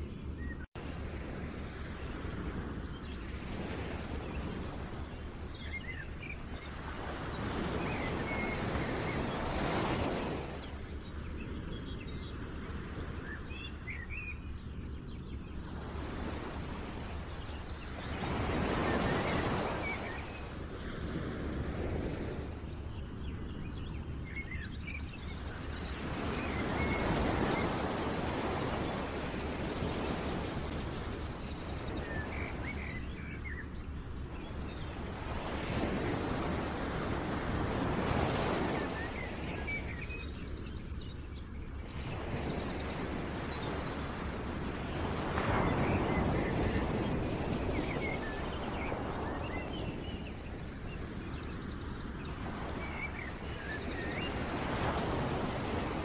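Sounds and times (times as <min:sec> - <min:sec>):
rushing surf or wind: 0:00.0 - 0:56.0.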